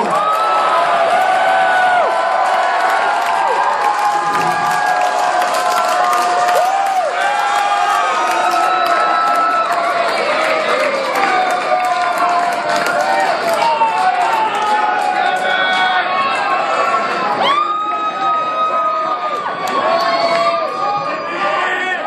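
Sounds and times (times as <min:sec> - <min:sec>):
audience clapping: 0:00.0 - 0:17.3, 0:19.2 - 0:20.7
audience cheering and whooping: 0:00.0 - 0:21.6.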